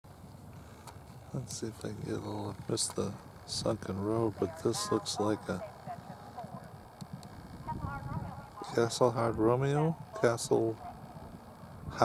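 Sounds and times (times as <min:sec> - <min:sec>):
horse galloping on grass: 0:00.2 - 0:12.0.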